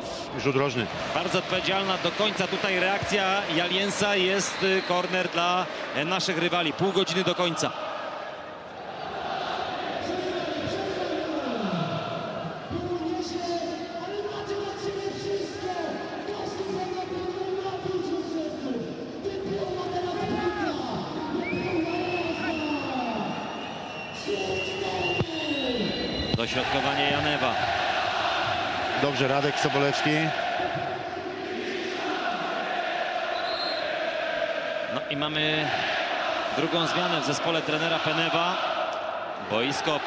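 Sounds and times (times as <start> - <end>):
crowd singing and chanting: 26.4 - 35.1.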